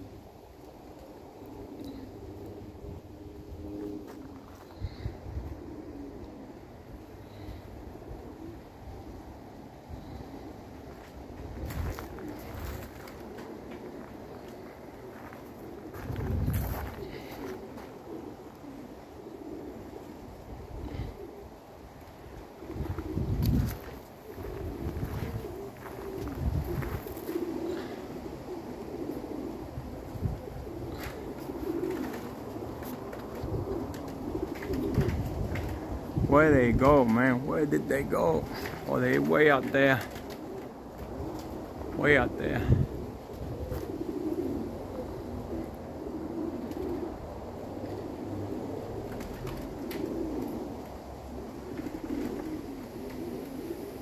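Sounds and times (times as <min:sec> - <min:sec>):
pigeons cooing: 0:00.0 - 0:54.0
wind buffeting microphone: 0:09.9 - 0:13.4, 0:14.7 - 0:17.3, 0:22.4 - 0:47.3.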